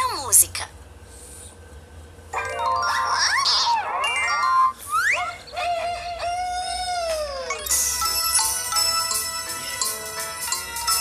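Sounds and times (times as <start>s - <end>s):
cartoon children's music: 2.4s - 11.0s.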